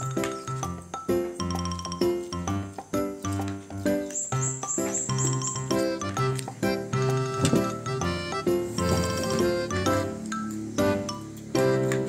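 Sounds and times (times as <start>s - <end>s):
upbeat background music: 0.0s - 12.0s.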